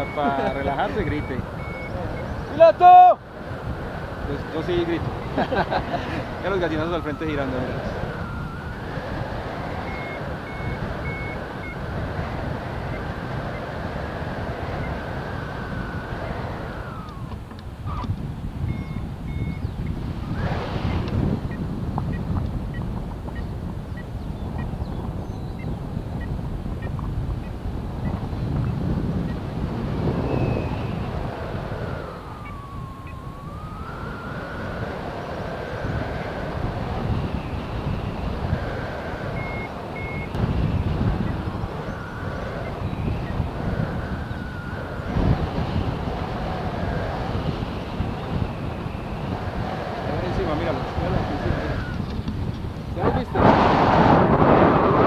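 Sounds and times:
electronic beeps: 0.0 - 2.6, 6.4 - 12.0, 14.7 - 17.3, 17.9 - 20.0, 31.8 - 34.8, 37.3 - 45.4, 51.4 - 52.1
wind rushing over microphone: 0.0 - 55.0
gliding whistling tone: 6.4 - 13.8, 14.4 - 18.1, 30.1 - 52.1.

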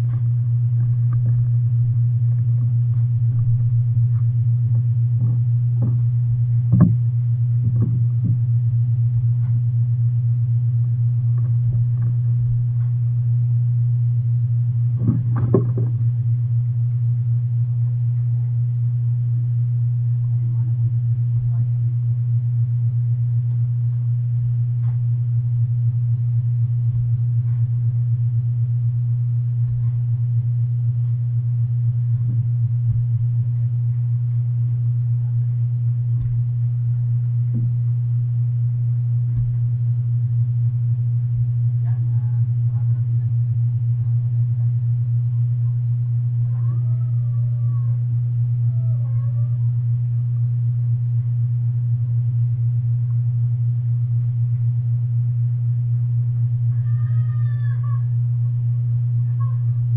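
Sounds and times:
loud low hum: 0.0 - 59.9.

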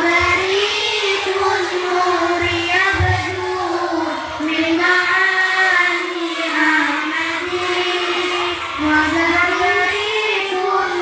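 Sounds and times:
girl singing into a microphone: 0.0 - 11.0
girls singing in unison: 0.0 - 11.0.

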